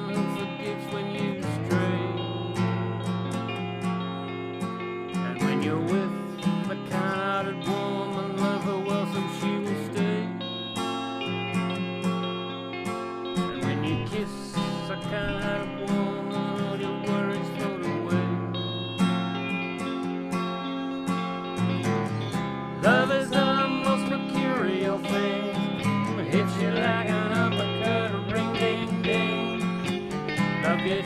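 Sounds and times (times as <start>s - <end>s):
electric guitar lead: 0.0s - 31.0s
guitar accompaniment: 0.0s - 31.0s.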